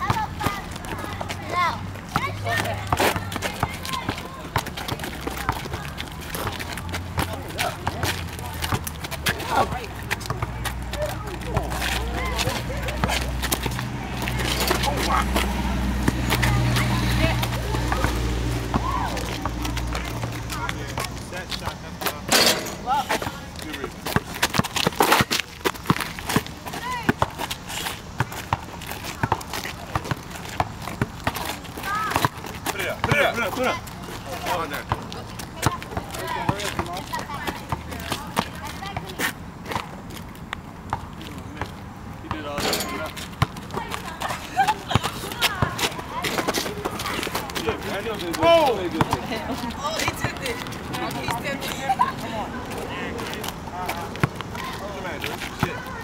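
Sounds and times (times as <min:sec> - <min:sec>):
players calling out: 0:00.0 - 0:39.4, 0:41.3 - 0:56.0
basketball knocks and sneaker scuffs: 0:22.1 - 0:23.4.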